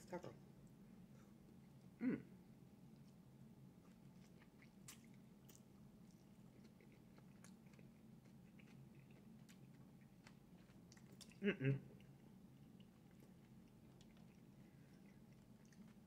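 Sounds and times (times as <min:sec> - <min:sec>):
low steady hum: 0:00.0 - 0:16.0
chewing with wet mouth clicks: 0:03.8 - 0:11.4, 0:12.0 - 0:16.0.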